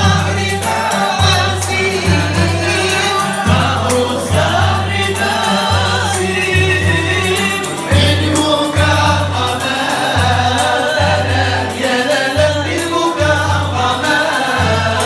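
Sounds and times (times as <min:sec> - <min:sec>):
men singing together: 0:00.0 - 0:15.0.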